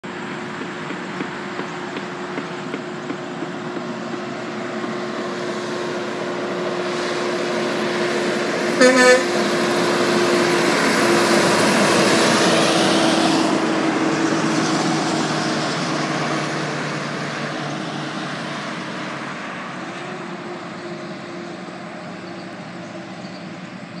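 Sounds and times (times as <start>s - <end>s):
truck driving past: 0.0s - 24.0s.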